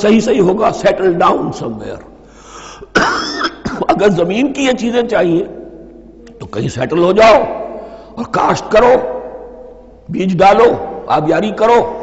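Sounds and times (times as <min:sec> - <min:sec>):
man coughing: 0:02.8 - 0:04.0.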